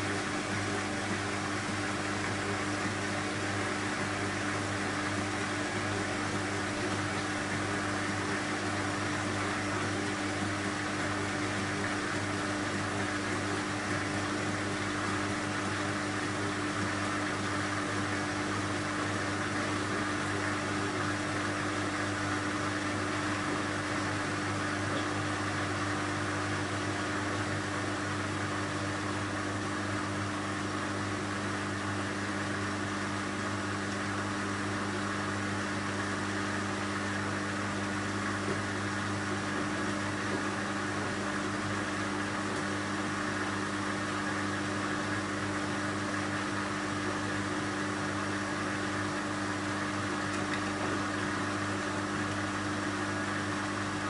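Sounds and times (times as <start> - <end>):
washing machine running: 0.0 - 54.0.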